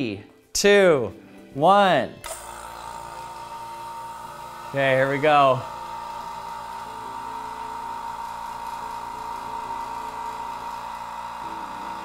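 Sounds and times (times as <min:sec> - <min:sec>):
vacuum pump running: 0:02.2 - 0:12.0.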